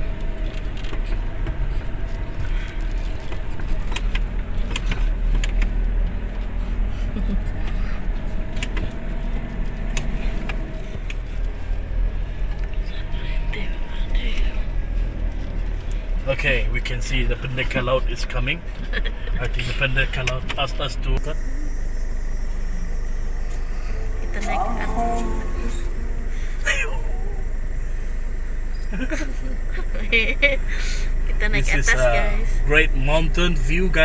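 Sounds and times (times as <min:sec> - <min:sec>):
vehicle engine and road rumble: 0:00.0 - 0:34.0.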